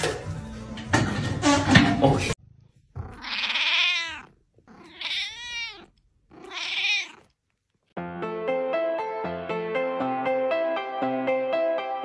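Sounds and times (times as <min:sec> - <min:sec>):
cat meowing: 0:03.0 - 0:07.4.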